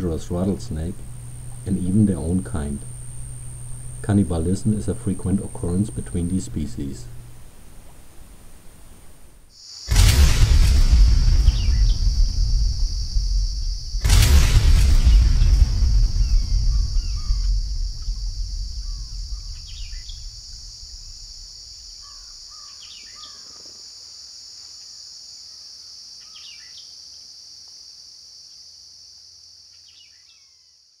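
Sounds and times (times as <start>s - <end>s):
deep boom with low rumble: 0.0s - 6.0s, 9.9s - 22.3s
high insect drone: 0.0s - 31.0s
bird chirps: 11.4s - 12.2s, 15.0s - 20.6s, 22.0s - 23.7s.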